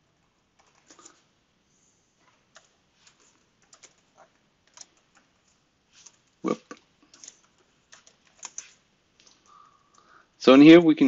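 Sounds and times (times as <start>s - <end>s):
computer keyboard typing: 0.2s - 1.2s, 2.2s - 10.0s.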